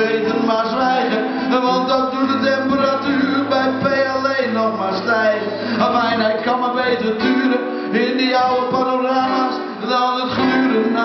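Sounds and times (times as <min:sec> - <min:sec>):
live band music: 0:00.0 - 0:11.0
strummed acoustic guitar: 0:00.0 - 0:11.0.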